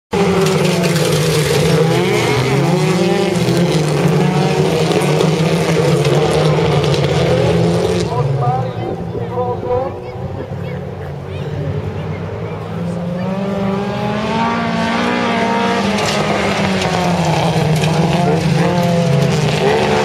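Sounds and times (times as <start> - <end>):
race car engines revving: 0.1 - 20.0.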